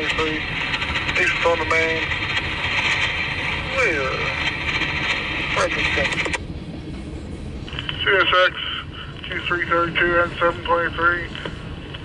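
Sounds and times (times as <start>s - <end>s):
voice over radio: 0.0s - 2.2s, 3.5s - 6.4s, 7.8s - 11.6s
radio static hiss: 0.0s - 6.4s, 7.6s - 12.0s.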